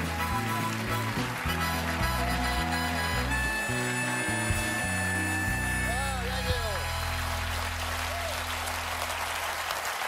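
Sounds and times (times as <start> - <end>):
band playing walk-on music: 0.0 - 10.0.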